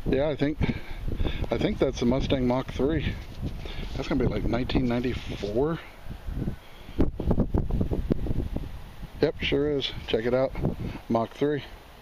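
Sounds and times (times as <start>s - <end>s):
wind buffeting microphone: 0.0s - 11.3s.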